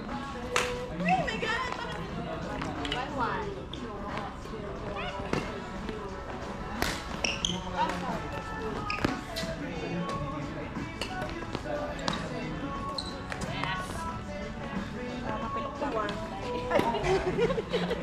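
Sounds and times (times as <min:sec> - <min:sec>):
background chatter: 0:00.0 - 0:18.0
sneakers squeaking on wooden floor: 0:04.9 - 0:10.3, 0:10.9 - 0:14.0.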